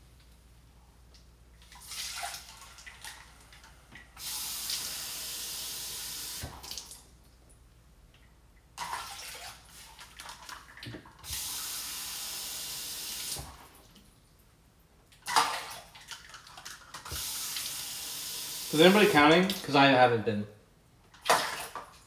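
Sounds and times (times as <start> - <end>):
faucet water running into cup: 4.2 - 6.5, 11.3 - 13.4, 17.1 - 19.2.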